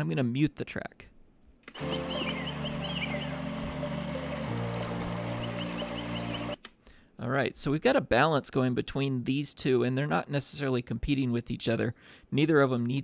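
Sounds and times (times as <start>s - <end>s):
high bird chirps: 1.8s - 4.5s, 5.2s - 6.6s
piano chords: 1.8s - 6.6s.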